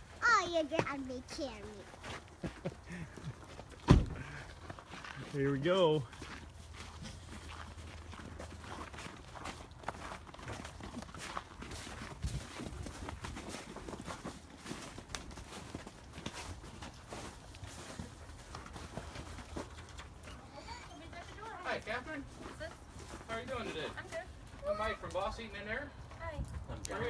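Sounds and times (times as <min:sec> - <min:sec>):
footsteps crunching through snow: 0:04.2 - 0:19.8.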